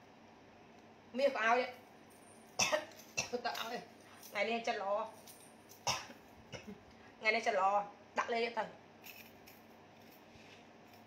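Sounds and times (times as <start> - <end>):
woman speaking: 1.1 - 1.8, 3.2 - 5.2, 7.2 - 8.8.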